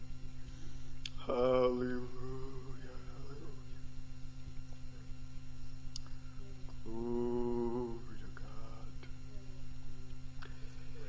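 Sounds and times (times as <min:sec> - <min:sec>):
electrical hum: 0:00.0 - 0:11.0
soft vocal sounds: 0:00.4 - 0:03.9, 0:05.9 - 0:11.0
person holding a sung note: 0:01.2 - 0:03.7, 0:06.8 - 0:08.8.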